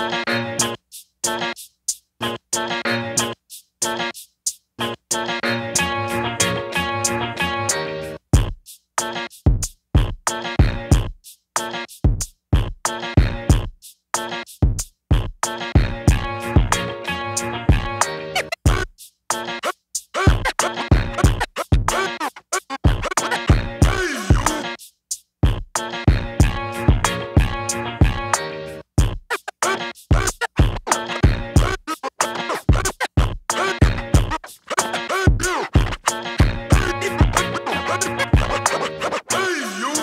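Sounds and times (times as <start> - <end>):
hip-hop beat: 0.0 - 40.0
kick drum: 8.4 - 8.6, 9.5 - 11.2, 12.0 - 13.8, 14.6 - 16.8, 17.7 - 17.9, 18.7 - 19.0, 20.3 - 22.0, 22.9 - 24.5, 25.4 - 28.2, 29.0 - 29.3, 30.1 - 31.8, 32.7 - 34.4, 35.3 - 37.4, 38.4 - 38.6
vinyl record scratching: 15.9 - 24.8, 26.1 - 28.4, 29.0 - 40.0.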